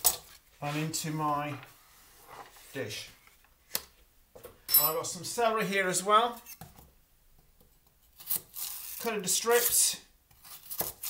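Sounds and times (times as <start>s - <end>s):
knife scraping through celery: 8.1s - 11.0s.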